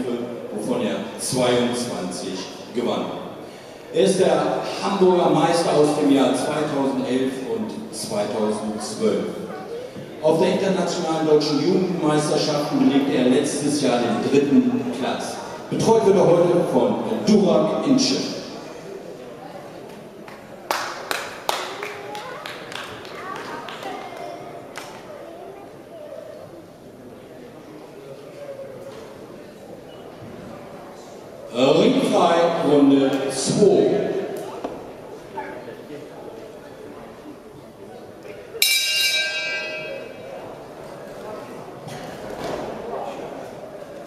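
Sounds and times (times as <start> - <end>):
boxing ring bell ringing: 38.6 - 40.3.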